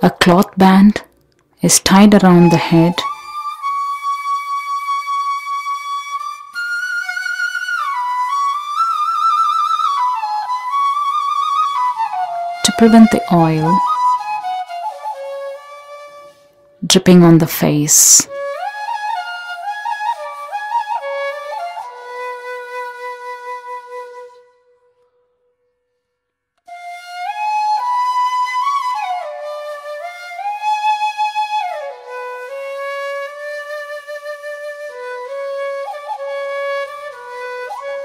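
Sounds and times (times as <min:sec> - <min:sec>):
solo flute slow melody: 0:02.4 - 0:16.8, 0:18.1 - 0:38.0.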